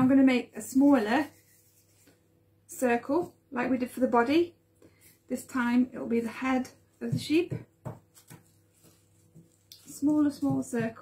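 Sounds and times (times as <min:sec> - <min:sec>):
hands shaping dough: 0:00.0 - 0:11.0.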